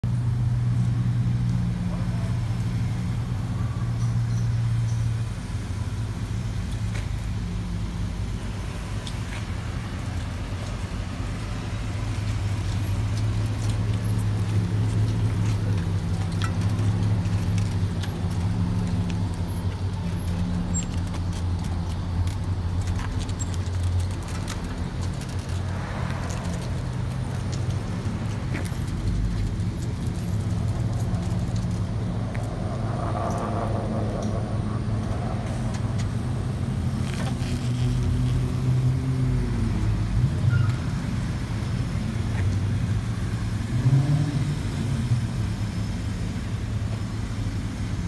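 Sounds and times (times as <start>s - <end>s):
car engine idling: 0.0s - 43.7s, 44.5s - 48.0s.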